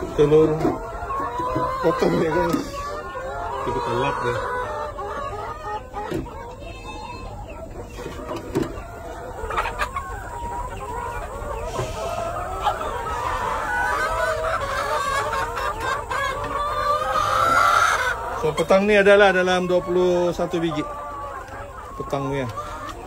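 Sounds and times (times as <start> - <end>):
chickens clucking: 0.0 - 23.0.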